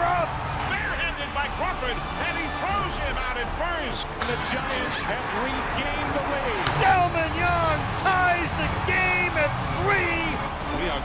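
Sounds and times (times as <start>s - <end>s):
announcer speaking excitedly: 0.0s - 11.0s
stadium crowd noise: 0.0s - 11.0s.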